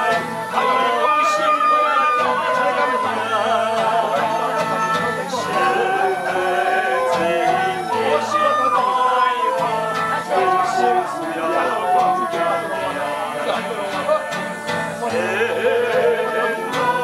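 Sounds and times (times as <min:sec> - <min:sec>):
bamboo flutes: 0:00.0 - 0:17.0
violin: 0:00.0 - 0:17.0.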